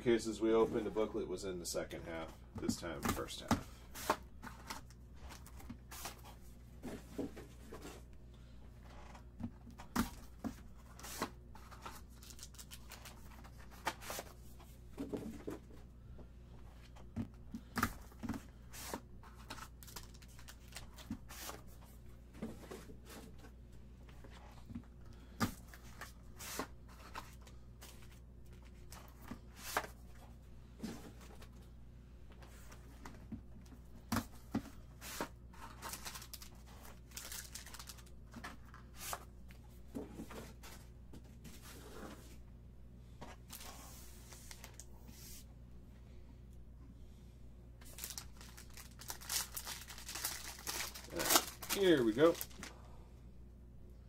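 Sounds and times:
low steady hum: 0.0 - 54.0
foil packs crinkling: 11.6 - 14.0, 19.3 - 21.6, 35.6 - 38.8, 47.8 - 52.7.

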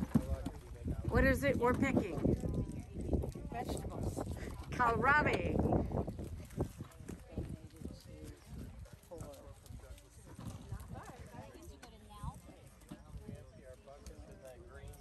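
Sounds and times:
distant chatter of people: 0.0 - 15.0.

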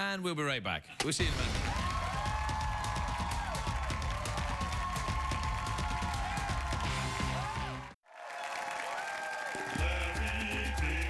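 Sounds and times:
drum beat: 1.6 - 7.8, 9.8 - 11.0
bass line: 5.1 - 8.0.

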